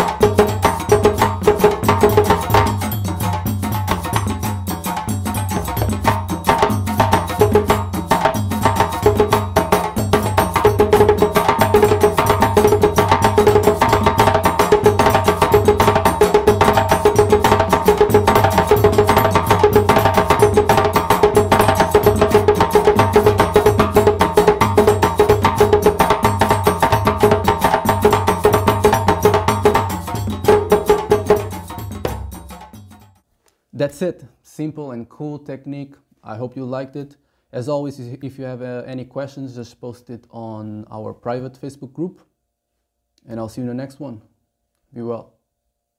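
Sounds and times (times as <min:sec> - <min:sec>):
djembe played by hand: 0:00.0 - 0:33.2.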